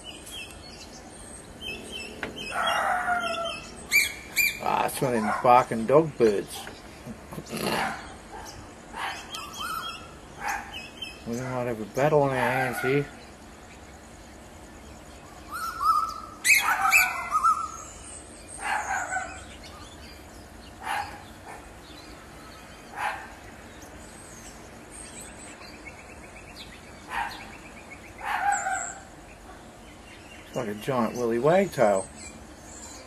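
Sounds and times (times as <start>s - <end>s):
bird harsh barking calls: 0.0s - 33.0s.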